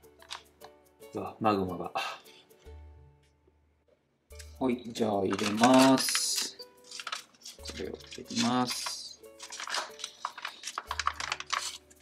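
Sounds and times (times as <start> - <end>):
foil pouch crinkling: 5.2 - 12.0.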